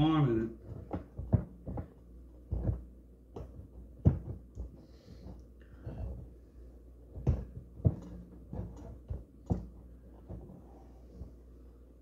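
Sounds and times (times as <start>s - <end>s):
soft thumps: 0.6s - 6.4s, 7.0s - 11.4s.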